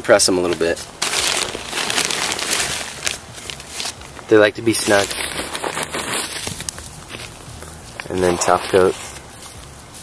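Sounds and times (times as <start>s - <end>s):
hands rustling soil and straw: 0.2s - 10.0s.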